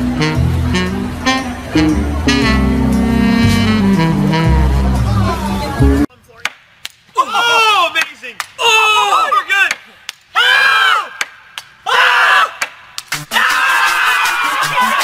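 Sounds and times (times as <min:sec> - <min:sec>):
men yelling: 0:07.2 - 0:09.8
cheering: 0:13.3 - 0:15.0.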